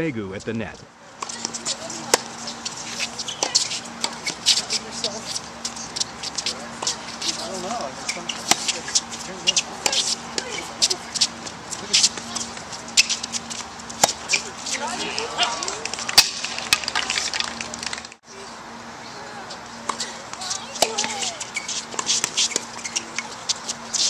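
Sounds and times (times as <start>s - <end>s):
steady low hum: 0.0s - 24.0s
murmur of voices: 0.9s - 24.0s
racket hitting tennis ball: 1.2s - 17.5s, 19.8s - 24.0s.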